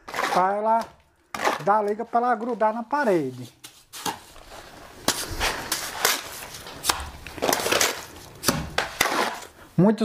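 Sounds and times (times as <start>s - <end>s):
trowel scraping mortar: 0.0s - 2.5s, 5.1s - 9.6s.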